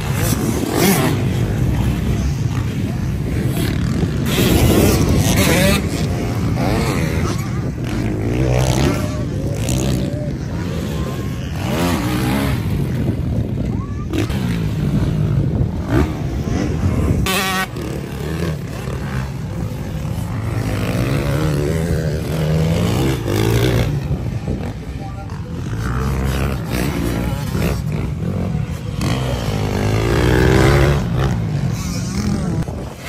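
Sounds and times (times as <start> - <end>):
motocross bike engines revving: 0.0 - 33.0.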